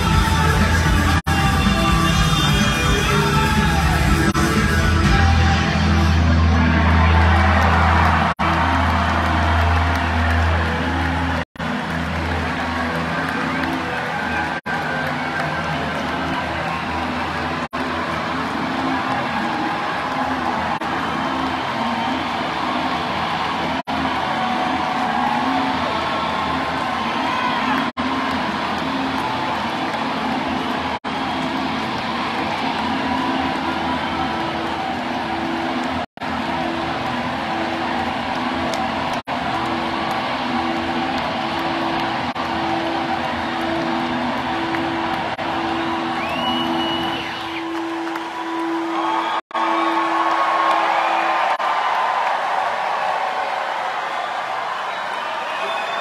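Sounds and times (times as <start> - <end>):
live rock band: 0.0 - 6.2
crowd cheering and whooping: 0.0 - 56.0.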